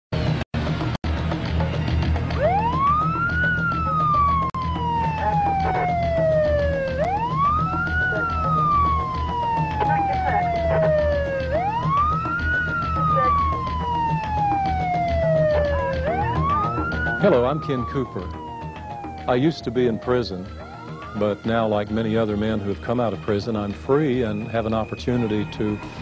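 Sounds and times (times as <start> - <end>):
police siren wailing: 2.3 - 21.8.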